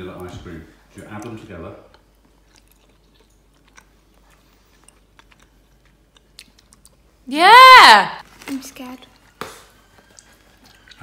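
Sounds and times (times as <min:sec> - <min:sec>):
person chewing gum: 0:01.1 - 0:07.2, 0:09.1 - 0:11.0.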